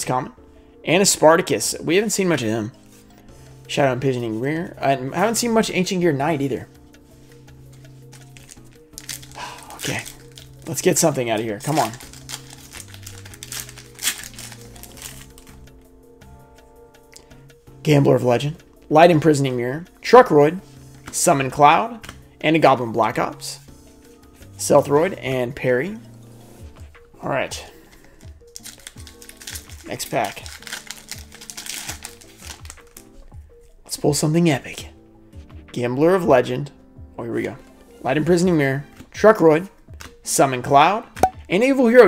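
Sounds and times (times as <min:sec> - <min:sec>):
background music: 0:00.0 - 0:42.0
foil wrapper crinkling: 0:08.1 - 0:15.6, 0:28.5 - 0:33.0.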